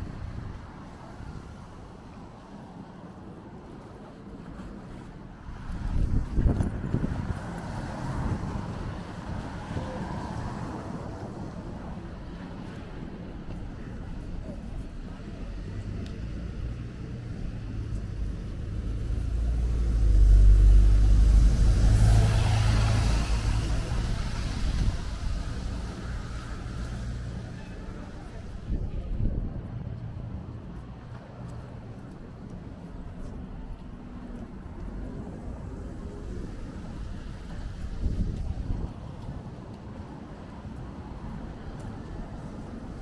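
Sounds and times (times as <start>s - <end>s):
cars passing: 0.0s - 43.0s
tyres hissing on wet road: 7.2s - 12.6s, 16.4s - 28.6s, 34.8s - 39.4s
deep engine rumble: 11.1s - 40.2s.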